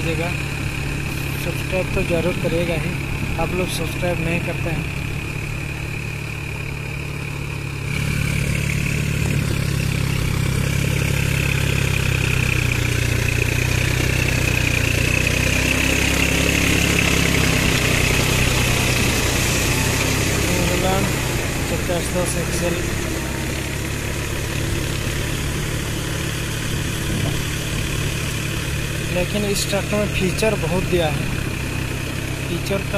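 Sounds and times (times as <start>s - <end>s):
tractor diesel engine running: 0.0s - 32.9s.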